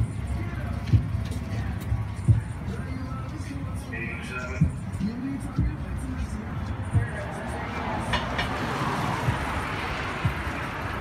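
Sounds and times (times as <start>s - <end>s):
car passing: 4.5s - 11.0s.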